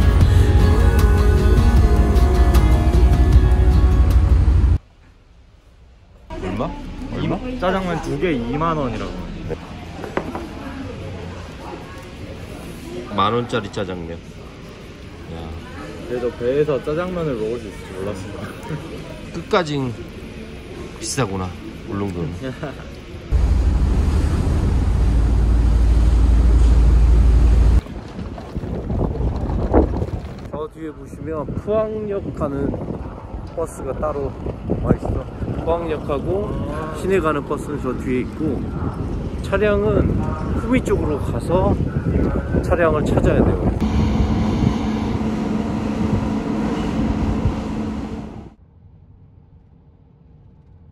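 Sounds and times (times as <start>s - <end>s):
outdoor background noise: 4.8s - 50.9s
wind buffeting microphone: 23.3s - 48.5s
low mechanical hum: 43.7s - 48.6s.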